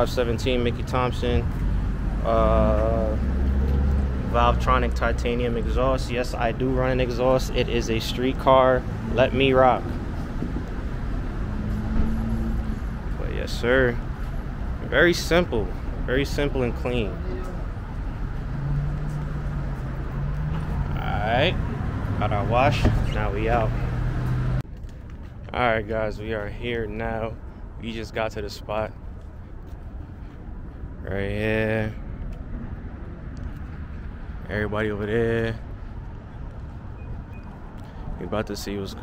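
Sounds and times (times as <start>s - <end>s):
low vehicle rumble: 0.0s - 39.0s.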